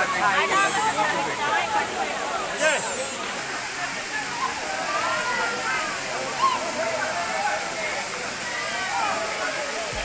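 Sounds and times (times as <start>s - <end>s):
crowd chattering: 0.0s - 10.0s
waterfall rushing: 0.0s - 10.0s.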